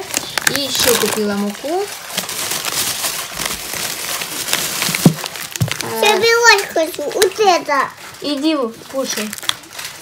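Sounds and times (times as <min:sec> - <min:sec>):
plastic bag rustling: 0:00.0 - 0:10.0.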